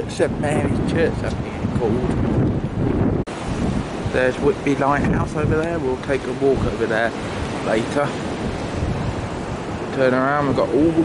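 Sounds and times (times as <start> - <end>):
choppy sea: 0.0 - 11.0
wind buffeting microphone: 0.0 - 11.0.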